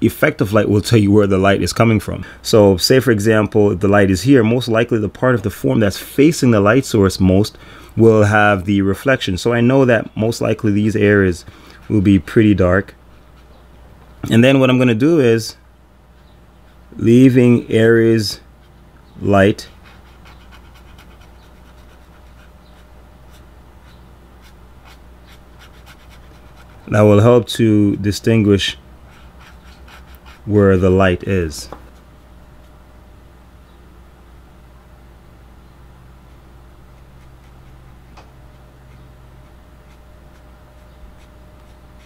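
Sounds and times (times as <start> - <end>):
low steady hum: 0.0 - 42.0
pen nib scratching on paper: 19.7 - 26.9, 29.1 - 30.5, 36.3 - 42.0.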